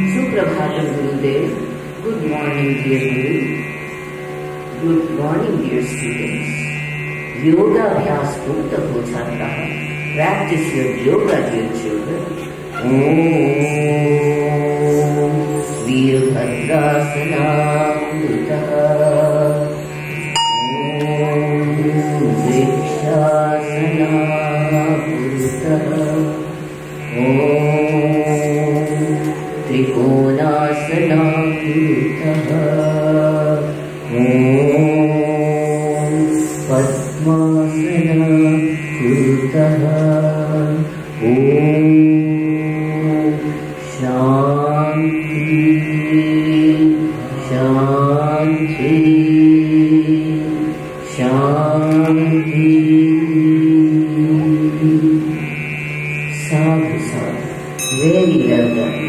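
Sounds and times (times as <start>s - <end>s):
person chanting: 0.0s - 59.0s
steady low drone: 0.0s - 59.0s.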